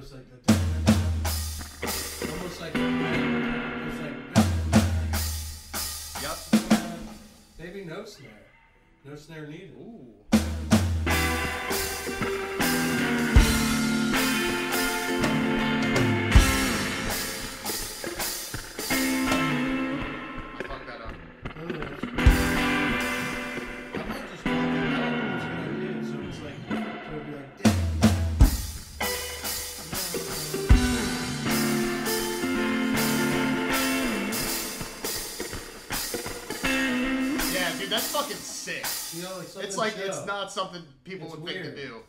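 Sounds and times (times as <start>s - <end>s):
drum kit playing: 0.5s - 7.9s, 10.3s - 26.1s, 27.6s - 40.3s
guitar strumming chords: 0.6s - 7.3s, 10.3s - 39.1s.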